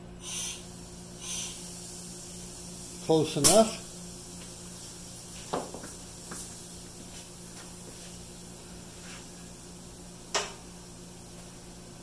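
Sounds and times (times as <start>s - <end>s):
compressed air hiss from valve: 0.2s - 9.5s.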